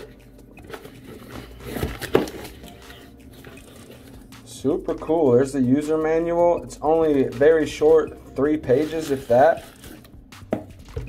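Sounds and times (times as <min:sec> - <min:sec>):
cardboard and paper rustling: 0:00.0 - 0:04.3, 0:08.7 - 0:10.1.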